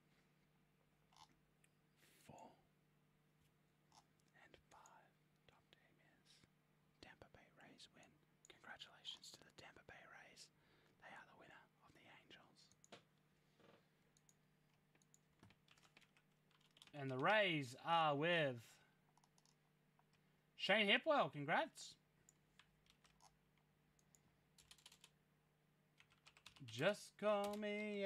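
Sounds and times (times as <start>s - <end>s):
faint electrical hum: 0.0s - 28.0s
soft whispering: 1.9s - 2.7s, 3.9s - 12.9s, 16.9s - 18.9s
faint clicks: 14.2s - 15.6s.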